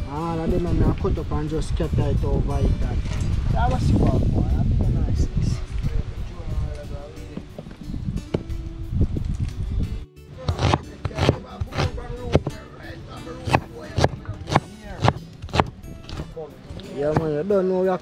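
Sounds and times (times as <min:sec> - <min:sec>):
cleaver chopping on wooden board: 0:10.4 - 0:12.6, 0:13.4 - 0:17.4.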